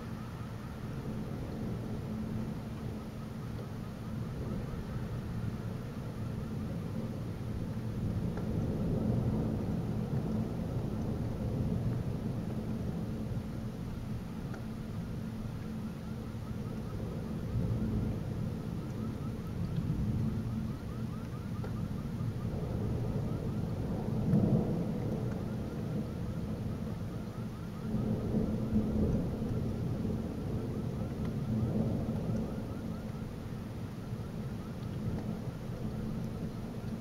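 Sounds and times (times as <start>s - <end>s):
steady rain: 0.0s - 37.0s
rolling thunder: 8.0s - 13.4s, 21.8s - 37.0s.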